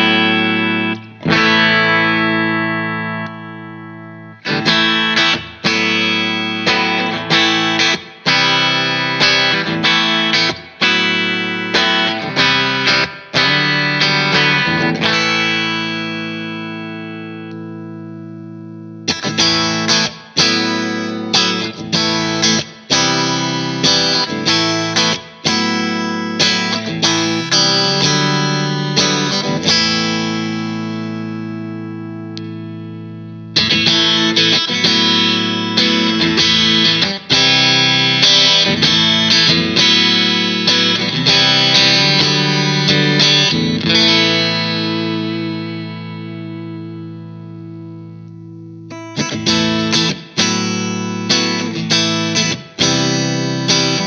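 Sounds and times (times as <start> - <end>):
clean electric guitar chords: 0.0 - 54.0.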